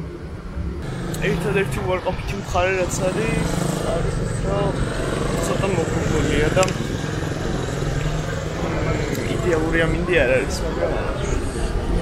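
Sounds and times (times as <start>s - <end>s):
low engine rumble: 0.4s - 12.0s
person talking: 1.1s - 4.8s, 5.4s - 6.9s.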